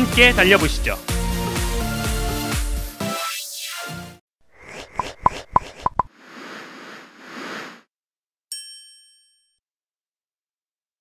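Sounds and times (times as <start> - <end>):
bell-like ding: 8.5 - 9.6.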